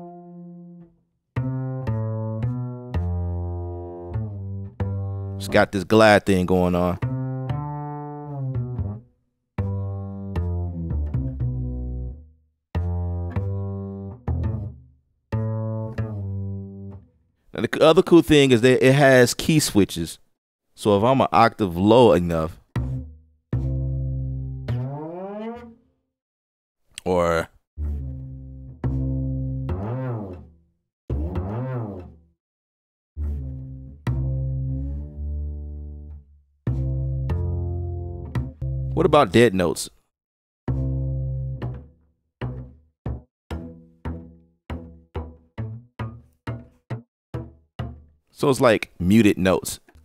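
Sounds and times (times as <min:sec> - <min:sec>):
plucked electric bass notes: 0:00.0 - 0:17.1, 0:22.2 - 0:25.6, 0:27.8 - 0:30.5, 0:31.1 - 0:32.2, 0:33.2 - 0:39.7, 0:40.7 - 0:48.1
bass note sliding upward: 0:09.6 - 0:12.2, 0:12.8 - 0:14.8, 0:22.8 - 0:25.8, 0:27.8 - 0:30.5, 0:31.1 - 0:32.2, 0:33.2 - 0:39.0.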